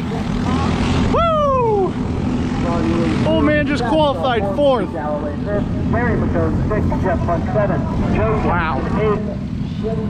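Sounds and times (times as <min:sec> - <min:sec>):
go-kart engines droning: 0:00.0 - 0:10.0.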